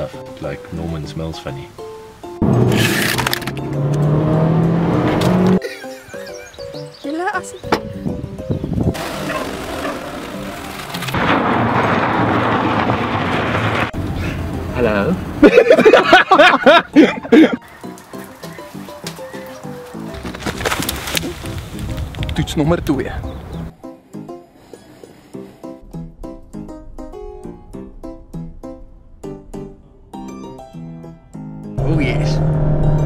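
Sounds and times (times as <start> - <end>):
plucked-string background music: 0.0 - 11.2, 14.5 - 33.0
car engine accelerating: 2.4 - 5.6, 8.9 - 11.6, 31.8 - 33.0
man laughing loudly: 5.6 - 6.5, 15.4 - 17.6.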